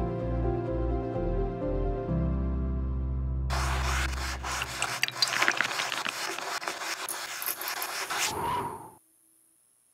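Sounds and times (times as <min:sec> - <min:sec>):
pen scratching on paper: 0:03.5 - 0:08.5.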